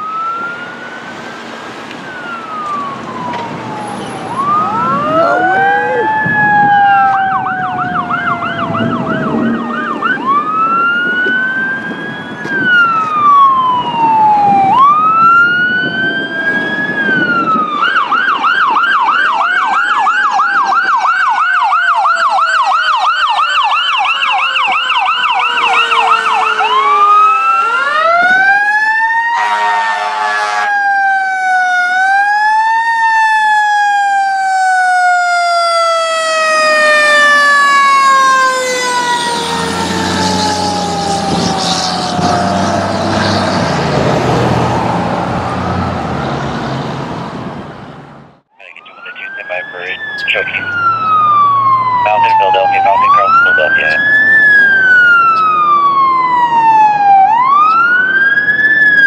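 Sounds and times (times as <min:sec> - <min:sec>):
emergency sirens wailing and yelping: 0:00.0 - 0:47.6, 0:48.6 - 0:59.0
engine and traffic rumble: 0:00.0 - 0:59.0.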